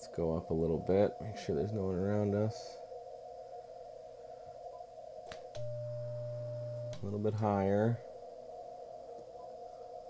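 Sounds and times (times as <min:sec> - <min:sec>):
radio receiver hiss: 0:00.2 - 0:10.0
steady sidetone beep: 0:05.6 - 0:07.9
low hum: 0:05.6 - 0:10.0.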